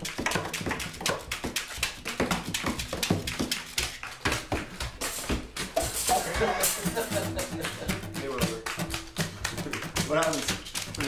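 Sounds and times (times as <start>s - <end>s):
hand tapping percussion: 0.0s - 11.0s
strummed acoustic guitar: 4.9s - 11.0s.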